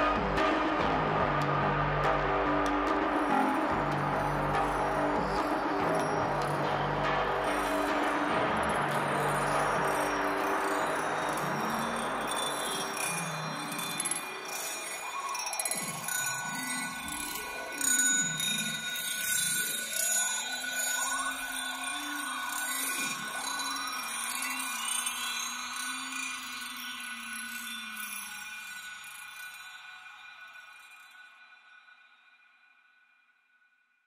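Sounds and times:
gliding synth tones: 0:00.0 - 0:29.5
steady ringing tones: 0:00.0 - 0:32.0
ambient electronic music: 0:00.0 - 0:32.1.

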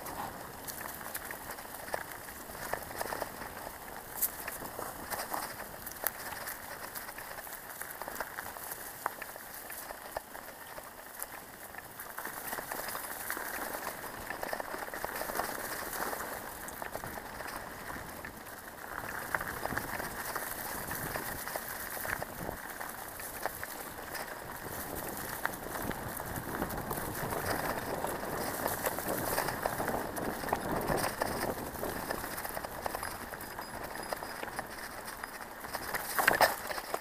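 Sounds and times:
bike tyres rolling over leaves: 0:00.0 - 0:37.0.

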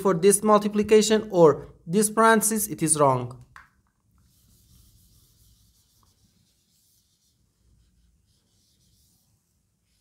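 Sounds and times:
eraser wiping whiteboard: 0:04.2 - 0:10.0.

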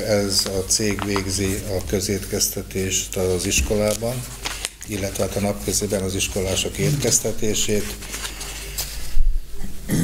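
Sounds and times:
man speaking: 0:00.0 - 0:08.1
man's throaty noise: 0:09.6 - 0:10.0.

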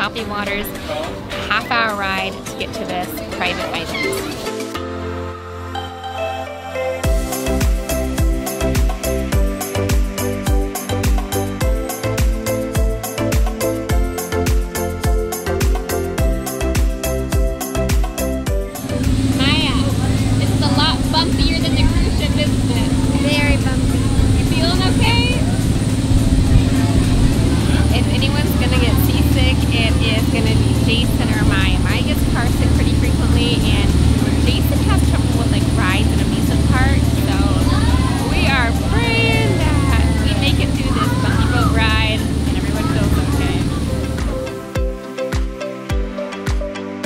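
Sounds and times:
high-pitched voices calling out: 0:03.4 - 0:04.5, 0:37.3 - 0:44.1
boat engine droning: 0:18.8 - 0:44.7.

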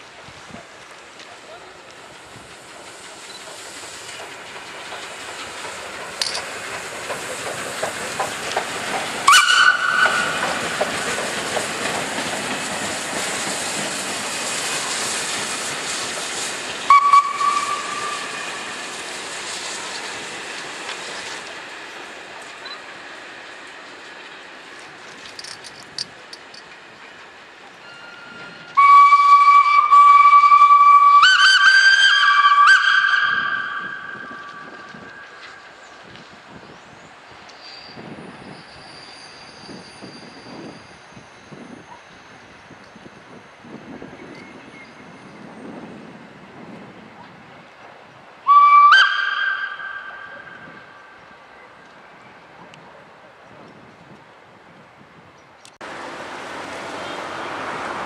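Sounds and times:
steam locomotive exhaust rush: 0:00.0 - 0:58.0
steam hissing: 0:00.5 - 0:31.3
long two-note steam whistle: 0:09.2 - 0:10.6, 0:16.8 - 0:18.8, 0:27.9 - 0:35.6, 0:48.4 - 0:51.2
short steam whistle blasts: 0:09.3 - 0:10.4, 0:16.9 - 0:18.8, 0:27.9 - 0:35.4, 0:48.5 - 0:51.1.

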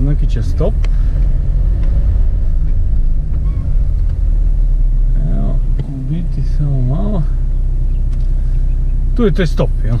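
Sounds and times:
car engine rumble inside cabin: 0:00.0 - 0:10.0
road noise: 0:00.0 - 0:10.0.

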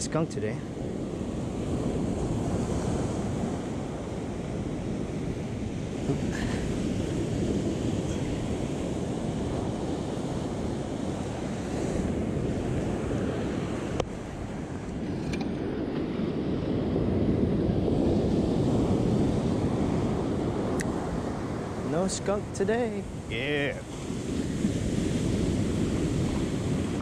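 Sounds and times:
surf breaking on beach: 0:00.0 - 0:27.0
wind buffeting microphone: 0:00.0 - 0:27.0.

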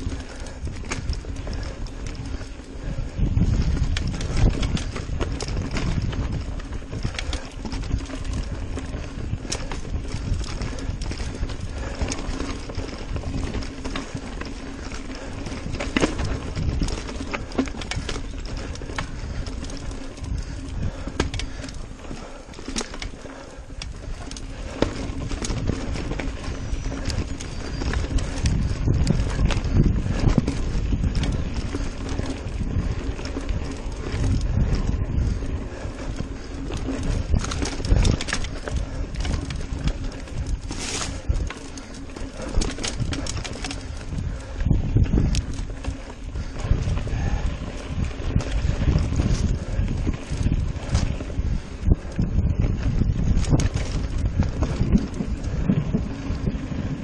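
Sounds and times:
bike tyres rumbling on dirt: 0:00.0 - 0:57.0
wheels knocking on rocks: 0:00.0 - 0:57.0.

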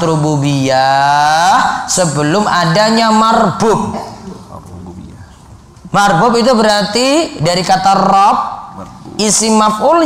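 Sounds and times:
low room noise: 0:00.0 - 0:10.0
man speaking: 0:00.0 - 0:10.0.

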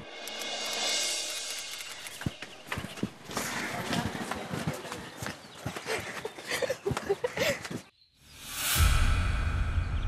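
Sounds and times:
scuffing footsteps: 0:02.1 - 0:07.9.

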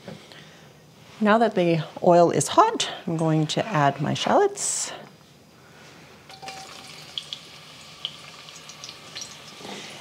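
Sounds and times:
shallots sizzling in oil: 0:06.3 - 0:10.0.

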